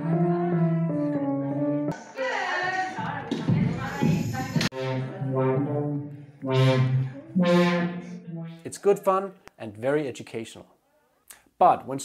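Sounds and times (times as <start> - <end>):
brass-like synthesizer notes: 4.7 - 8.8.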